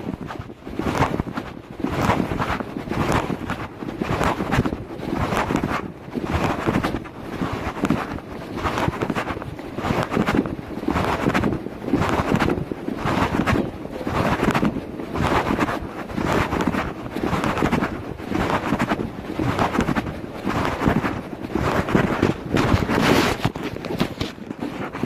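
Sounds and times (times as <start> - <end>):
wind rushing over phone microphone: 0.0 - 25.0.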